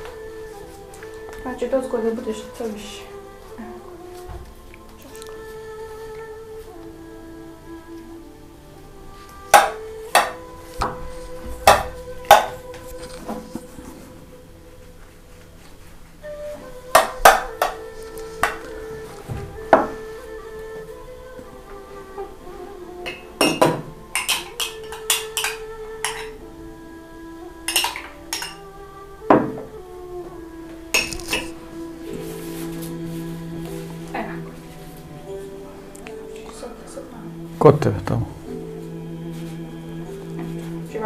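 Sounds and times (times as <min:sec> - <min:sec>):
quiet background music: 0:00.0 - 0:41.0
dishes and utensils clinking: 0:23.0 - 0:26.4, 0:27.7 - 0:28.7, 0:30.9 - 0:32.2.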